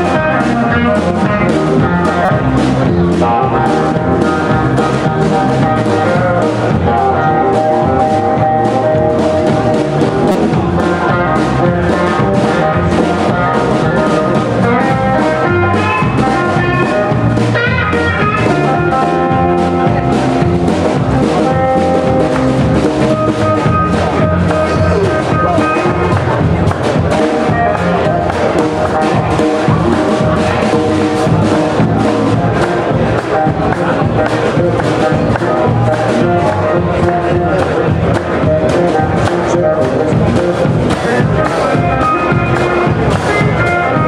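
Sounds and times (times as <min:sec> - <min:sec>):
electric guitar solo: 0:00.0 - 0:44.0
steady drum beat: 0:00.0 - 0:44.0.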